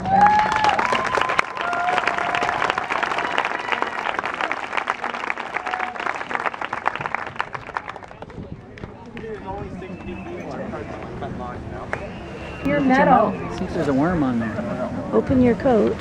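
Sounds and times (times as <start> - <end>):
crowd applauding: 0.0 - 10.3.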